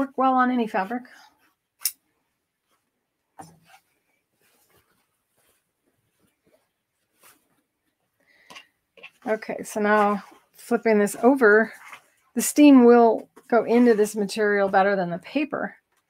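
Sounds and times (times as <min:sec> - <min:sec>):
quiet handling sounds: 0:00.8 - 0:14.8.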